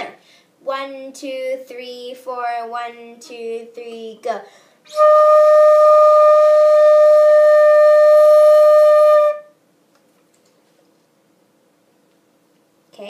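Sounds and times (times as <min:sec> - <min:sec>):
flute holding one note: 0:04.9 - 0:09.5.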